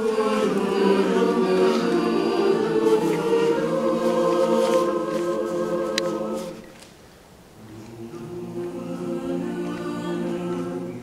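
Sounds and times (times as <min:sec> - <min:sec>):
mixed choir singing: 0:00.0 - 0:06.8, 0:07.6 - 0:11.0.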